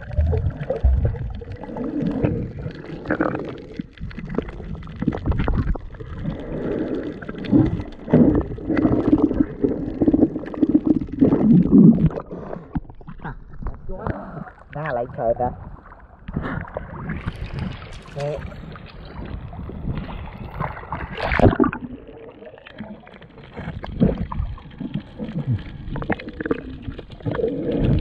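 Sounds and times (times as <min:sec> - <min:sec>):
muffled underwater gurgling: 0:00.0 - 0:28.0.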